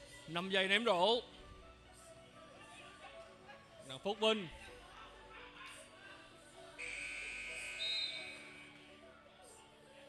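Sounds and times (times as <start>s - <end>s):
short high whistle: 6.8s - 8.7s.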